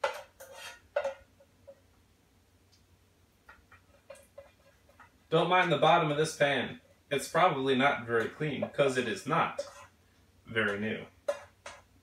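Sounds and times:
spoon scraping saucepan: 0.0s - 1.8s, 3.5s - 12.0s.

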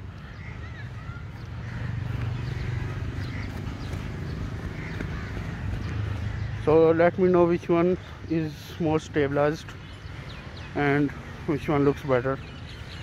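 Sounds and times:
footsteps on grass: 1.2s - 6.6s.

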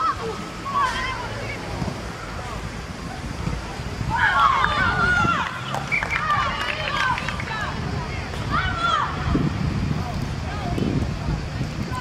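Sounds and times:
young voices shouting: 0.0s - 2.6s, 3.8s - 9.7s, 10.4s - 12.0s.

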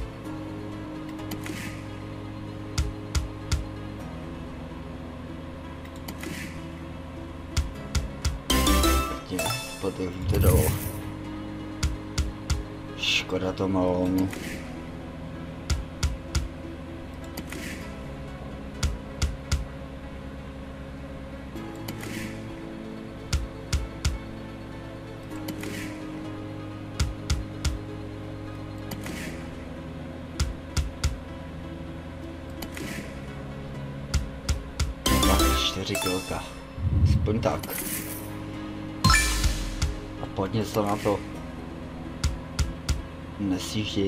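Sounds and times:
looping game backing tune: 7.5s - 12.7s, 34.6s - 41.6s.

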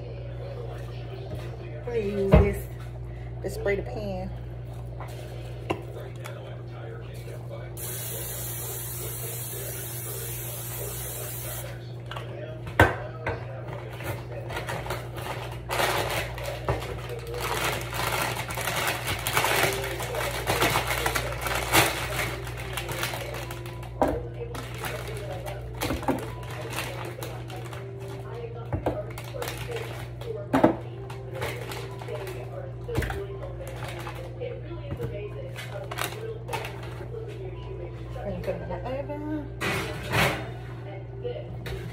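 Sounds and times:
kitchen clatter and knocks: 12.1s - 27.1s, 28.7s - 32.2s, 39.6s - 40.6s.

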